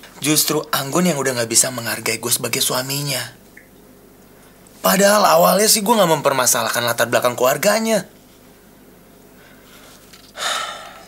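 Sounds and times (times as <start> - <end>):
man's heavy breath: 9.4 - 11.0.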